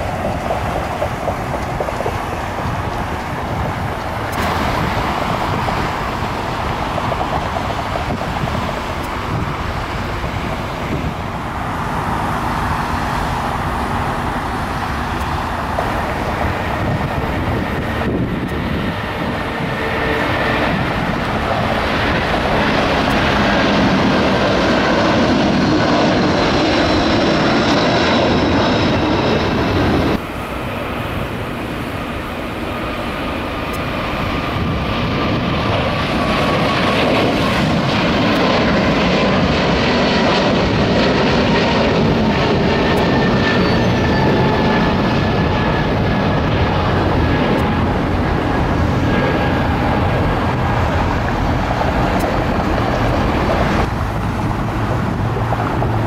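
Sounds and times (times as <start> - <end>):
jet airliner taxiing: 0.0 - 56.0
jet engines at takeoff power: 0.0 - 56.0.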